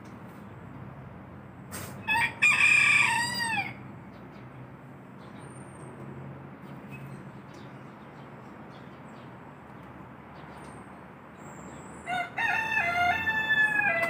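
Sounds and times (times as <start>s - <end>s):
rooster crowing: 2.0s - 3.8s, 12.0s - 14.0s.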